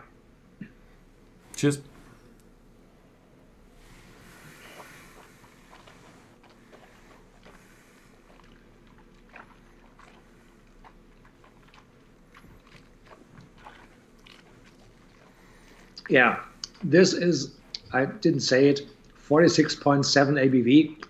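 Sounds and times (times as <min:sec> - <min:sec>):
low steady hum: 0:00.0 - 0:21.0
mouth noises sipping drink: 0:03.8 - 0:11.9.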